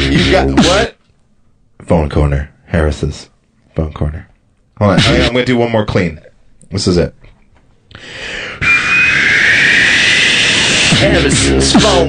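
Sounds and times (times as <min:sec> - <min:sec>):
man hissing into microphone: 0:08.0 - 0:11.1.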